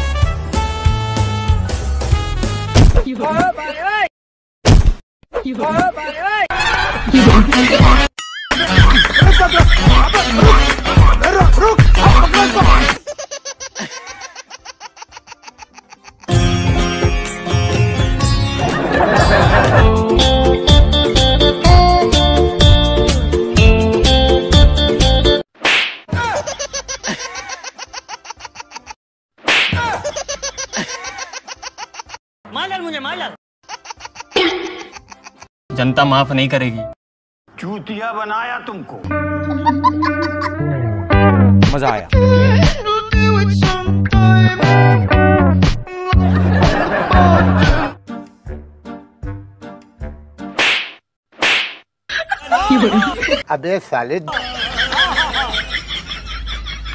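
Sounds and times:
guitar background music: 16.3s - 25.4s, 39.1s - 50.0s
whip cracks: 25.6s - 26.1s, 29.4s - 29.8s, 50.6s - 51.8s.

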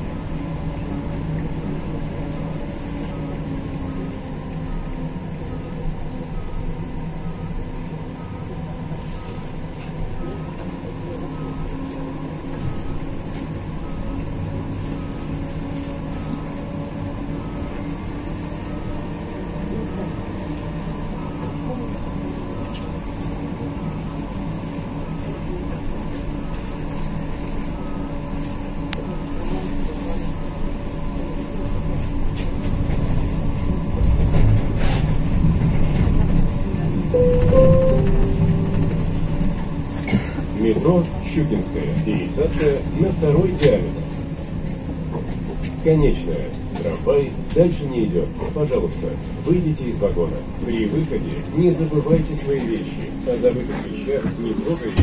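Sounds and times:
tram running hum and rumble: 0.0s - 55.0s
steady tones: 37.2s - 39.9s.

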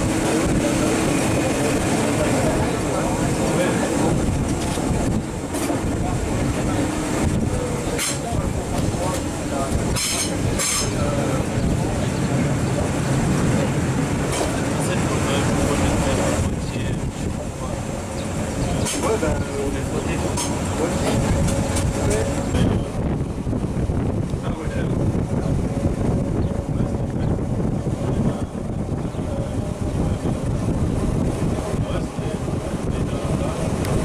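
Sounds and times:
railcar rolling rumble: 0.0s - 34.0s
wheels clicking on track: 0.0s - 34.0s.

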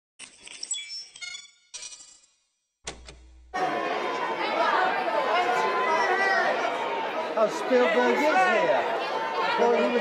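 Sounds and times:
chatter of many voices: 3.5s - 10.0s.

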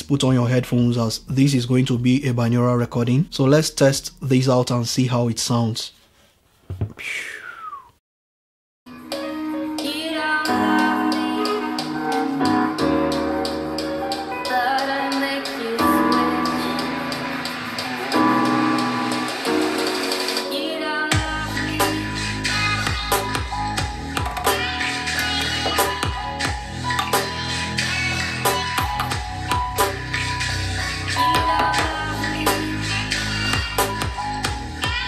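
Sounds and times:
music from portable speaker: 8.9s - 35.0s.

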